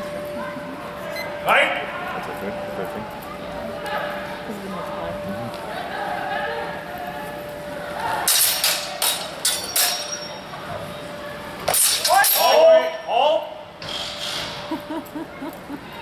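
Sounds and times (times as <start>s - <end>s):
sword blades clashing: 8.2s - 10.4s, 11.7s - 12.7s.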